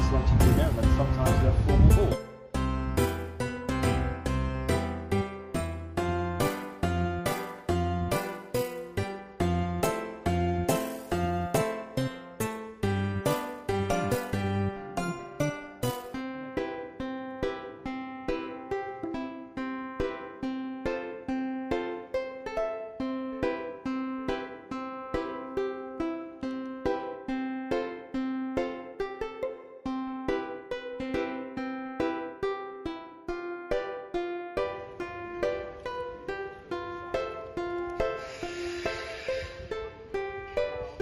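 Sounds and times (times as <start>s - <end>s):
plucked string melody: 0.0s - 41.0s.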